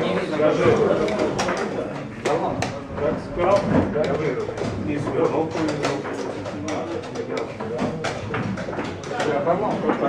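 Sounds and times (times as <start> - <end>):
low muffled talk: 0.0 - 10.0.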